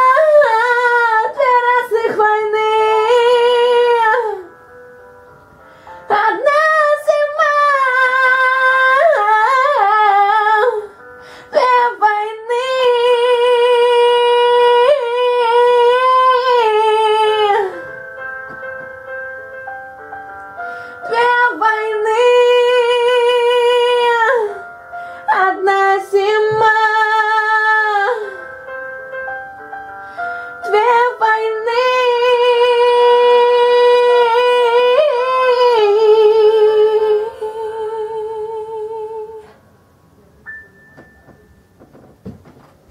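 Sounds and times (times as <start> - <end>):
piano backing track: 0.0 - 42.9.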